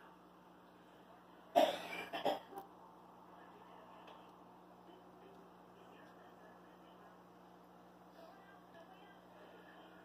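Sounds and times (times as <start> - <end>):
person coughing: 1.5 - 2.6.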